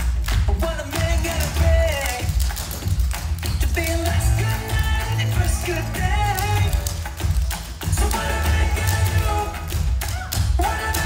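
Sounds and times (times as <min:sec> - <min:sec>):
pop song with strong bass: 0:00.0 - 0:11.0
tap shoes striking stage: 0:00.0 - 0:11.0.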